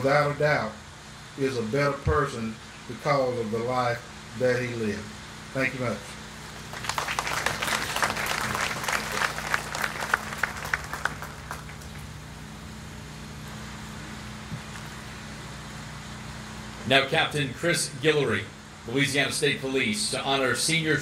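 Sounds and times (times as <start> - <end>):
steady low hum: 0.0 - 21.0
audience applause: 6.6 - 12.1.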